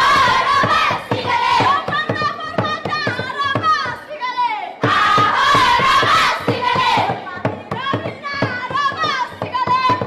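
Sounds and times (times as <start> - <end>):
steady percussive beat: 0.0 - 4.1, 4.8 - 10.0
girls chanting and calling out: 0.0 - 10.0.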